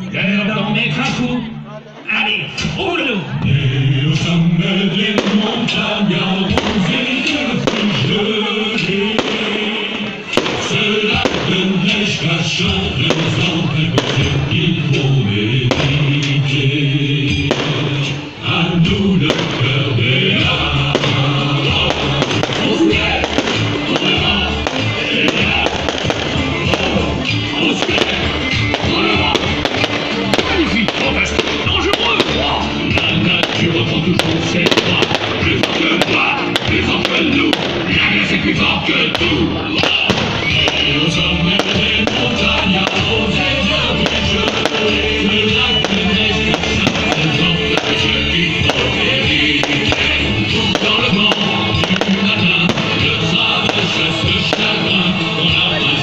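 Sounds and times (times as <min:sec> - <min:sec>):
loud music: 0:00.0 - 0:56.0
fireworks popping and crackling: 0:04.1 - 0:16.6, 0:17.2 - 0:56.0.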